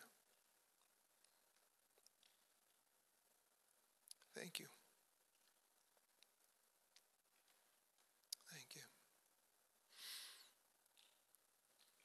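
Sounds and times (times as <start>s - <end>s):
soft murmured voice: 4.1s - 5.0s, 8.3s - 9.1s.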